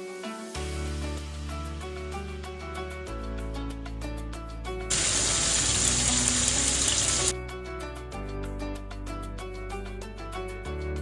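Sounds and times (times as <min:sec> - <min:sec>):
chicken frying in oil: 0:04.9 - 0:07.3.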